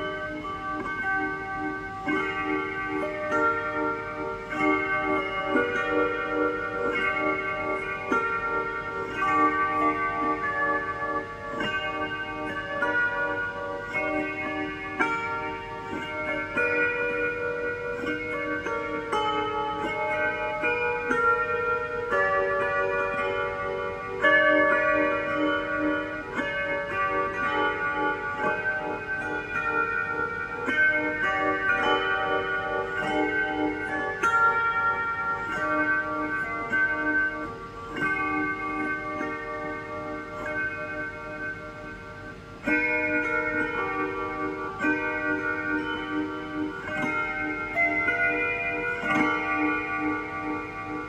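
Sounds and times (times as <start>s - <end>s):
electric guitar with delay: 0.0s - 51.0s
plucked harp: 0.0s - 51.0s.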